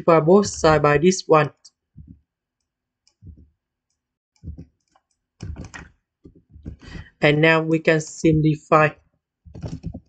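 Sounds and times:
mouse and keyboard clicks: 9.5s - 10.0s.

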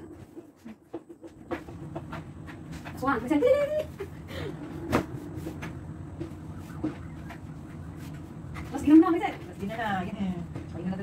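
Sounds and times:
loud woman's voice: 3.0s - 4.0s.

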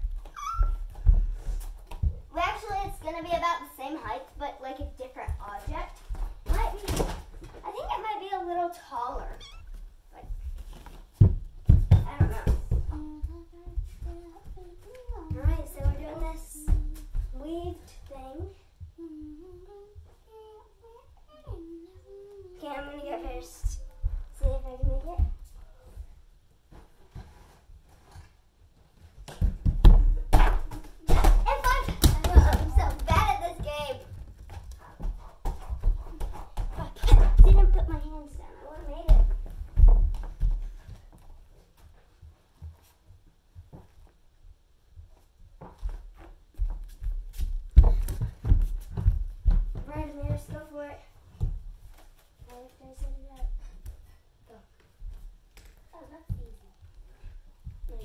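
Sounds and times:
thumps on floor mat: 10.4s - 13.0s, 29.2s - 37.9s.

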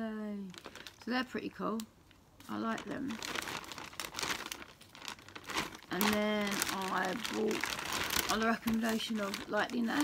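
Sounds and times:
plastic bag rustling: 0.4s - 10.0s.

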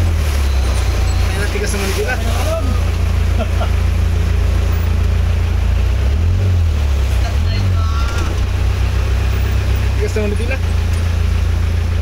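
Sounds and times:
car engine low drone: 0.0s - 12.0s
water washing against car: 0.0s - 12.0s.

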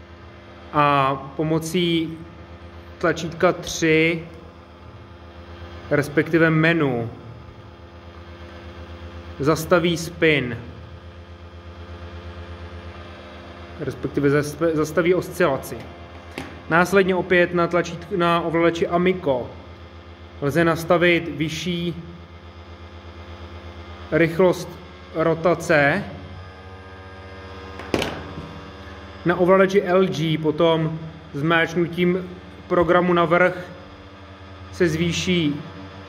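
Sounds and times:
robot motors humming and pulsing: 0.0s - 36.0s.

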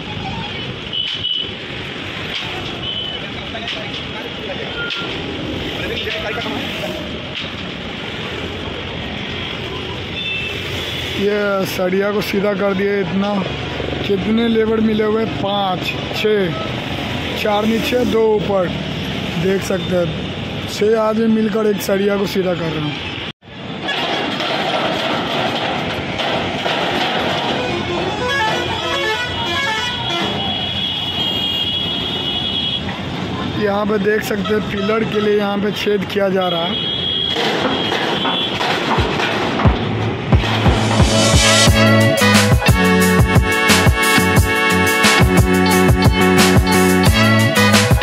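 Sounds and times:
road traffic noise: 0.0s - 48.0s.

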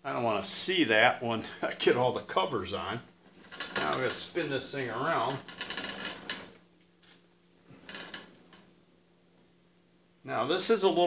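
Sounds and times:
metal clunks and scraping: 3.3s - 4.3s.

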